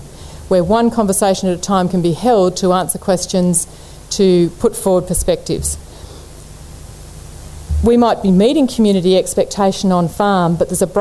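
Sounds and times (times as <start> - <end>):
sound system hum and hiss: 0.0 - 11.0
woman speaking: 7.8 - 8.8.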